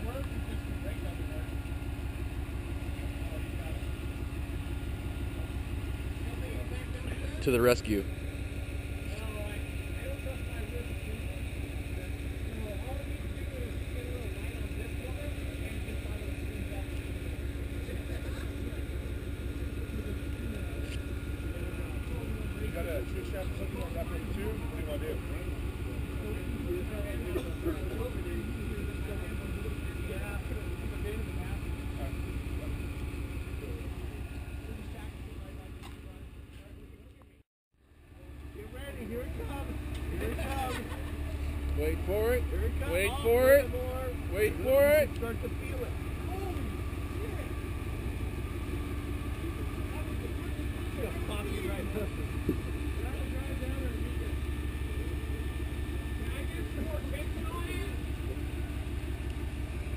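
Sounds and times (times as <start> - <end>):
people talking: 0.0 - 1.6, 2.8 - 4.0, 5.3 - 8.1, 9.0 - 37.4, 38.4 - 47.7, 49.3 - 58.9
buggy engine idling: 0.0 - 59.9.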